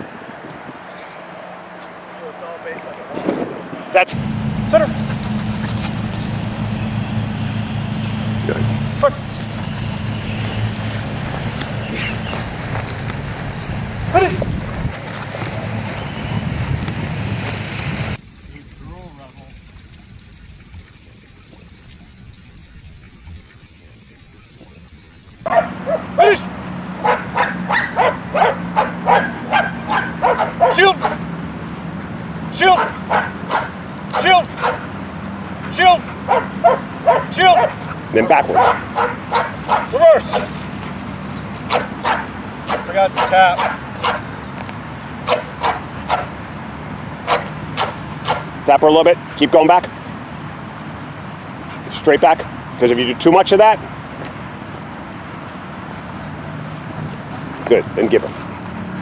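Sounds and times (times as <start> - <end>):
low hum: 4.1 - 18.4
dog barking: 8.4 - 9.9, 25.5 - 31.2, 32.6 - 34.9, 35.6 - 40.5, 41.7 - 44.3, 45.2 - 46.4, 47.3 - 48.5.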